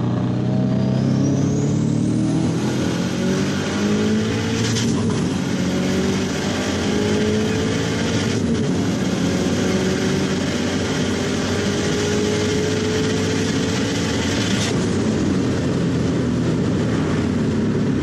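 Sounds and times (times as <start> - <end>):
car engine pulling: 0.0 - 18.0.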